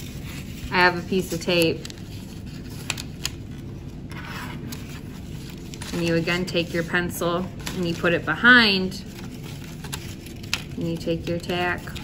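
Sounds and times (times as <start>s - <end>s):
paper being handled: 0.0s - 12.0s
paper rustle: 0.0s - 12.0s.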